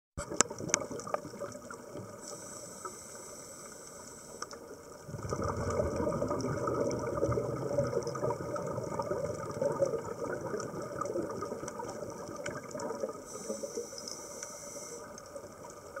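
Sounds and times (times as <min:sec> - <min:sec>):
bubbles rumbling underwater: 0:00.2 - 0:02.2, 0:04.8 - 0:13.4.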